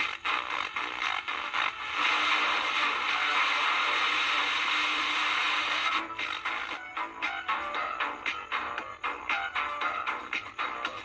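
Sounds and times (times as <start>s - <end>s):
radio static hiss and crackle: 1.2s - 6.0s.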